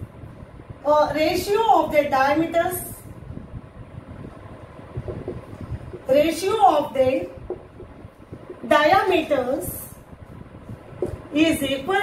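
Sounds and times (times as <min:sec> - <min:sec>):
low rumble: 0:02.9 - 0:12.0.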